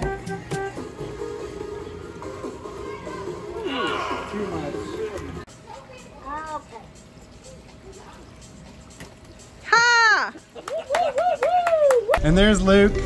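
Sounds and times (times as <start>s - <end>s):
people calling out: 3.1s - 5.4s, 9.6s - 12.1s.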